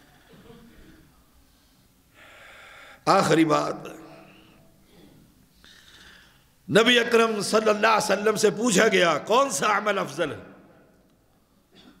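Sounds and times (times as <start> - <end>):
man breathing in: 2.1 - 3.0, 5.6 - 6.5
man speaking: 3.1 - 4.2, 6.7 - 10.5.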